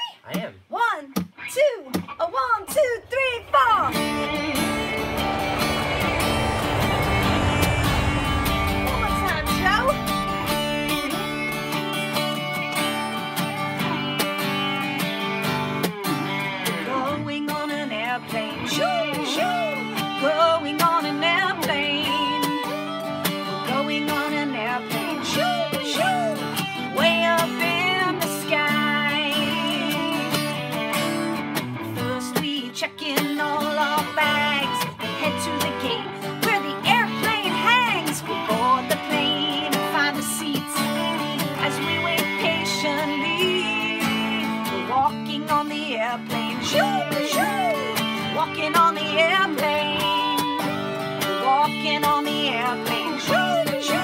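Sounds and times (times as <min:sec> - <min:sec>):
strummed acoustic guitar: 0:00.3 - 0:54.0
woman singing: 0:00.8 - 0:12.0, 0:16.7 - 0:31.2, 0:31.8 - 0:54.0
electric guitar: 0:01.2 - 0:54.0.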